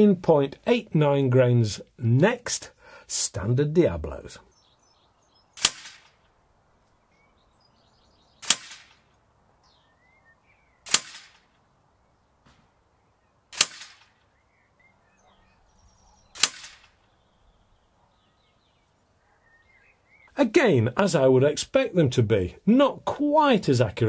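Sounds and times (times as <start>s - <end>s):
air rifle shots: 5.6s - 6.2s, 8.4s - 9.1s, 10.8s - 11.5s, 13.5s - 14.2s, 16.3s - 17.0s.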